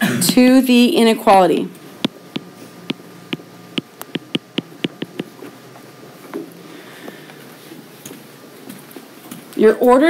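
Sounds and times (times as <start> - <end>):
stylus tapping on glass screen: 3.3 - 5.3.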